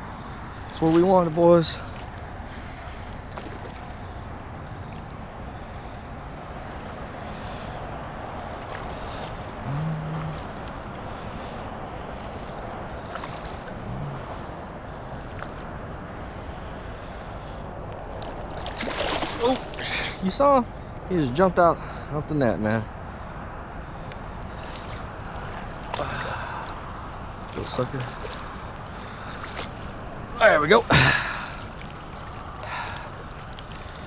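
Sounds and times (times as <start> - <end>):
wind: 0.0 - 34.0
water rushing: 6.2 - 15.6, 18.0 - 21.0, 24.2 - 34.0.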